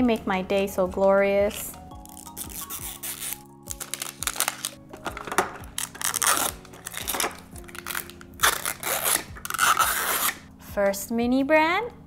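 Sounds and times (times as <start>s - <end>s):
soft background music: 0.0s - 12.0s
plastic wrapping crinkling: 2.0s - 10.4s
seal strip tearing: 2.0s - 10.4s.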